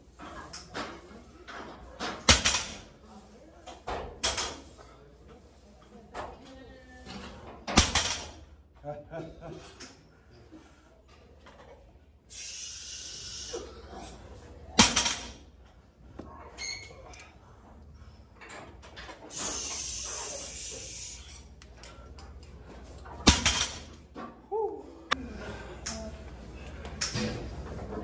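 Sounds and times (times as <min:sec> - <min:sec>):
hiss: 0:12.3 - 0:13.7, 0:19.3 - 0:21.4.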